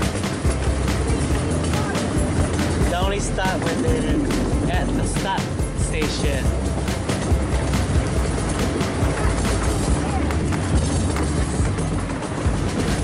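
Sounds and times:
music: 0.0 - 13.0
ride-on train rumbling on track: 0.0 - 13.0
person speaking: 1.1 - 6.6.

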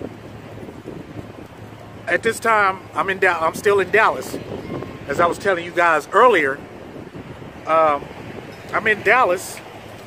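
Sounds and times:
wind noise on microphone: 0.0 - 10.0.

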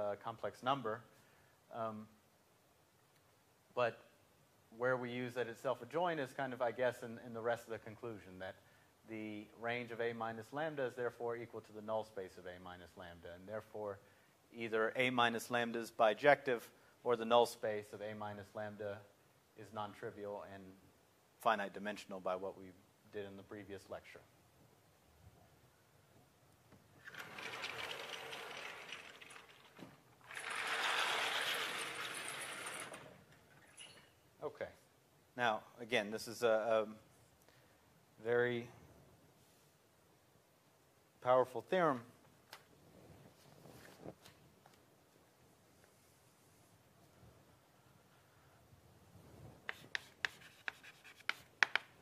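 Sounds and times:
sliding chalkboard panels: 27.0 - 33.2
chalk tapping and scraping on blackboard: 49.6 - 52.0.

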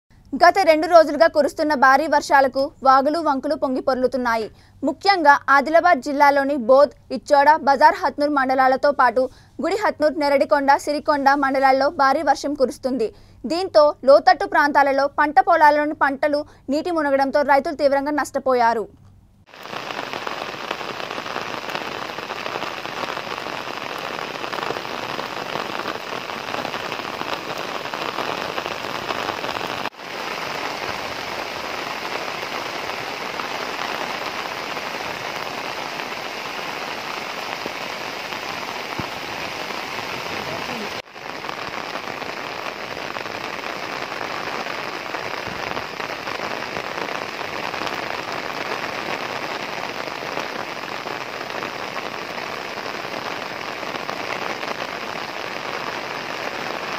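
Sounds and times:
heavy rain hissing: 19.4 - 56.9.

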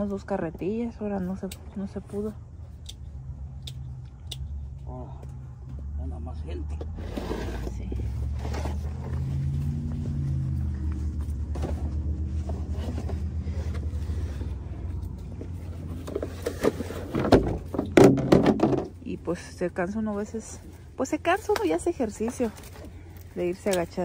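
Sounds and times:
vehicle engine humming: 0.0 - 24.0.

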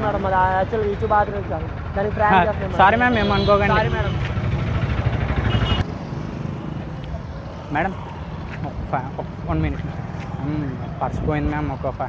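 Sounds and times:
motorcycle and scooter engines: 0.0 - 12.0
steady traffic background: 0.0 - 12.0.

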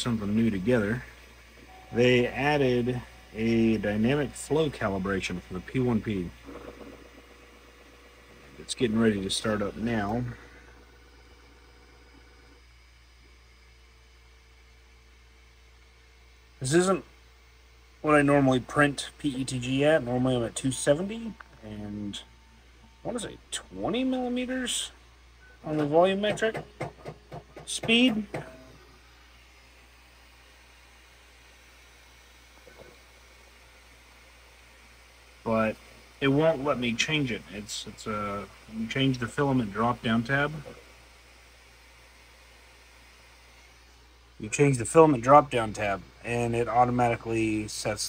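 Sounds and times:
faint steady hiss: 0.0 - 27.0, 27.8 - 48.0
thin whine: 0.0 - 48.0
three d printer humming: 0.0 - 48.0.

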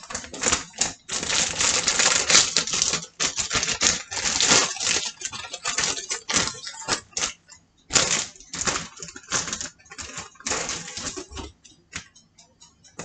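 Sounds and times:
plastic bag crinkling: 0.0 - 11.5.

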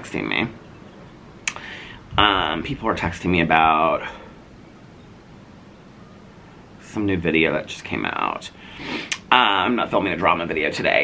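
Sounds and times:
man talking: 0.0 - 0.6, 2.0 - 4.4, 6.8 - 8.6, 9.3 - 11.0
faint steady background noise: 0.0 - 11.0.

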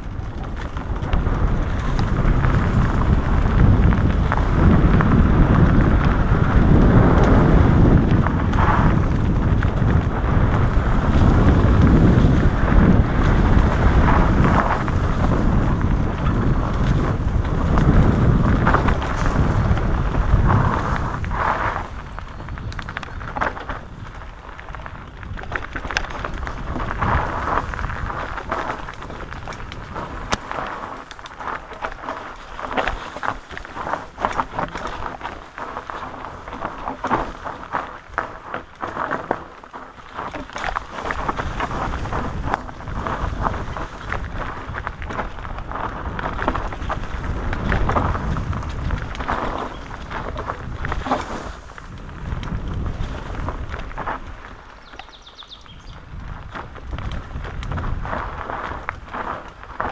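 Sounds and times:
bike knocking and rattling: 0.0 - 59.9
bike tyres rolling on dirt: 0.0 - 59.9
wind rumble on microphone: 0.0 - 59.9.

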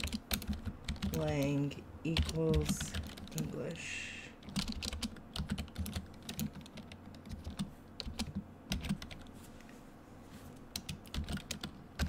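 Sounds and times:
computer keyboard typing: 0.0 - 3.6, 4.4 - 9.3, 10.7 - 12.0.

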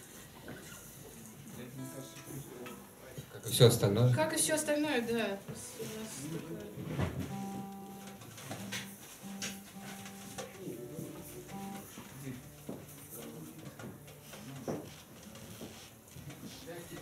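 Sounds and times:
held instrument notes: 1.6 - 3.4, 5.5 - 16.5
light knocks and handling noise: 11.3 - 17.0.

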